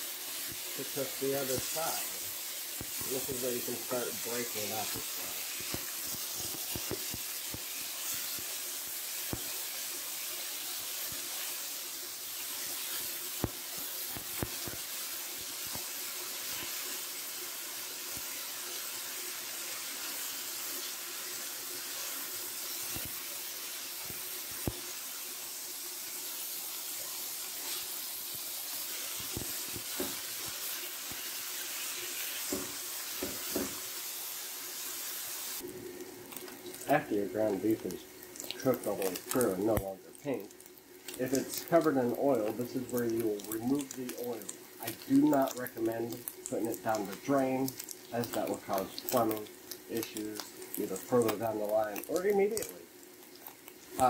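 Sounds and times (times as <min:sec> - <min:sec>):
meat sizzling in a skillet: 0:00.0 - 0:54.0.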